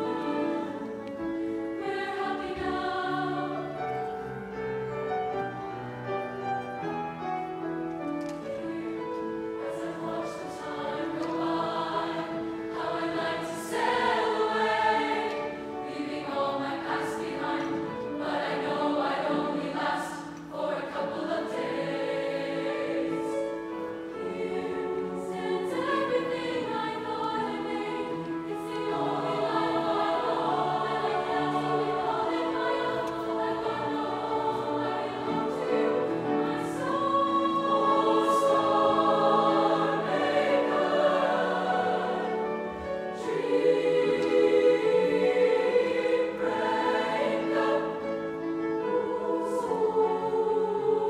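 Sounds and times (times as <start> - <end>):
choir singing in harmony: 0.0 - 51.0
piano accompaniment: 0.0 - 51.0.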